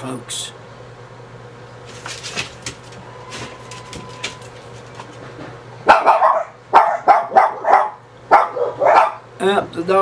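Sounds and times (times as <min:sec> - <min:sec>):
dogs barking: 0:05.8 - 0:09.4.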